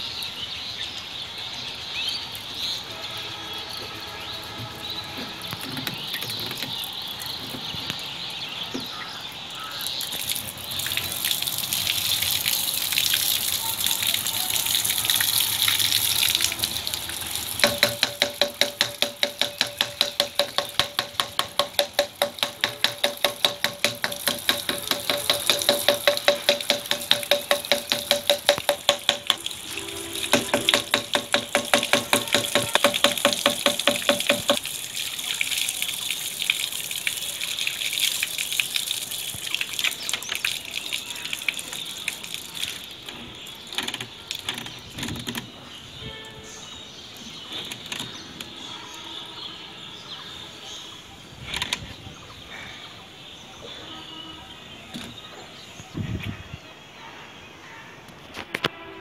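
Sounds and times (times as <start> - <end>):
water gushing and splashing: 3.8 - 45.0.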